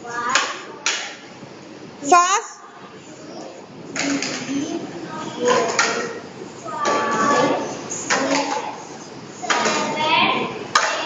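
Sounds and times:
children calling out: 2.1 - 11.0.

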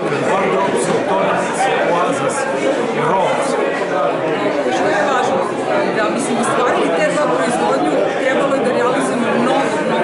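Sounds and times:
room chatter: 0.0 - 10.0.

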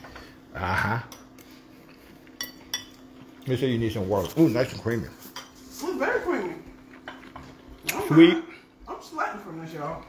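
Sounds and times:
metal fork clinking ceramic bowl: 2.4 - 3.0.

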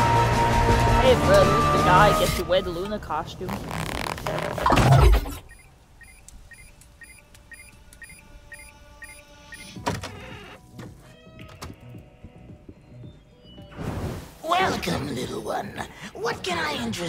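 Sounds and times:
repeated electronic blips: 4.4 - 10.6
faint held tones: 5.4 - 9.8.

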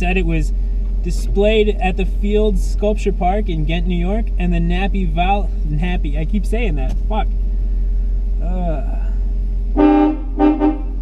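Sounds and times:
car horn honking: 9.7 - 11.0.

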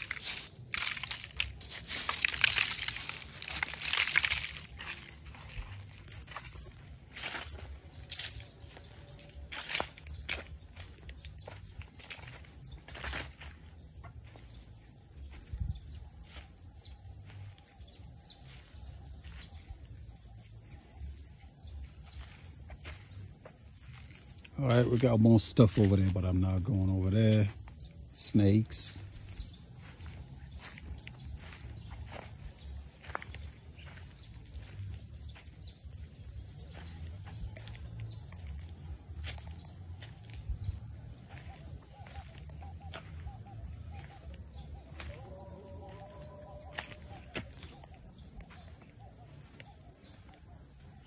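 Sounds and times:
footsteps crunching on dry leaves: 0.0 - 51.0
outdoor background: 0.0 - 51.0.

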